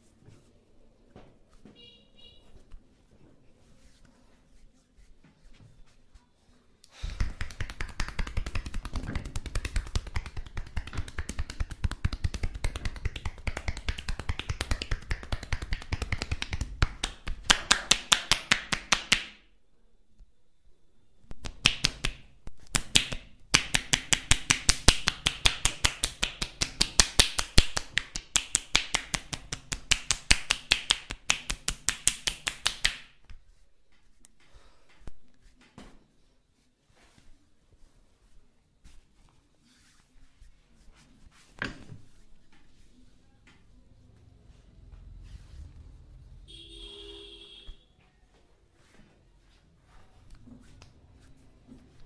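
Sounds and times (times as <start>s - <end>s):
palms clapping on bare skin: 7.1s - 19.4s, 21.3s - 33.4s.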